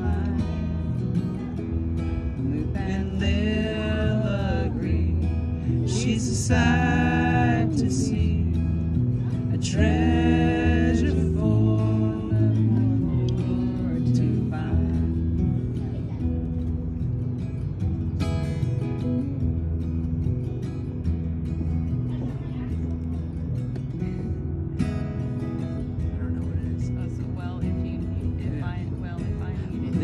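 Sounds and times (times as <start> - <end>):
acoustic guitar ballad: 0.0 - 30.0.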